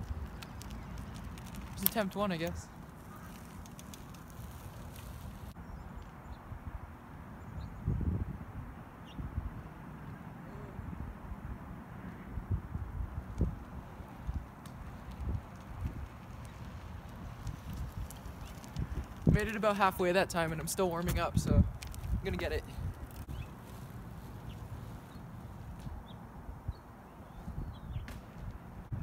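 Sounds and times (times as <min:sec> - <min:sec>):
wind buffeting microphone: 0:07.6 - 0:09.7, 0:12.2 - 0:29.0.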